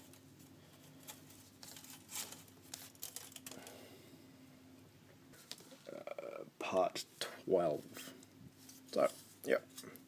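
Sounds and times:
plastic sprues rustling and clicking: 0:00.8 - 0:03.8.

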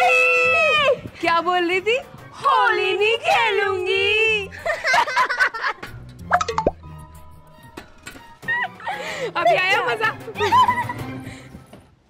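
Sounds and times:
background music: 0:00.0 - 0:12.0
girls laughing and shrieking: 0:10.4 - 0:11.1.

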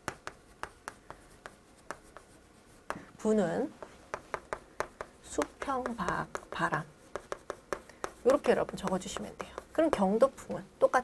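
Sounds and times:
chalk tapping on chalkboard: 0:00.0 - 0:11.0.

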